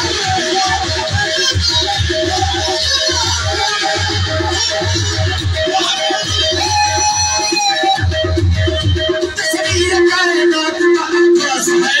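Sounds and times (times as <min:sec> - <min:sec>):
live band instrumental music: 0:00.0 - 0:12.0.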